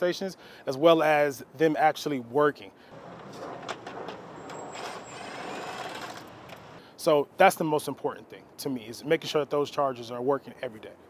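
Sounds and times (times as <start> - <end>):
background traffic noise: 0.0 - 11.0.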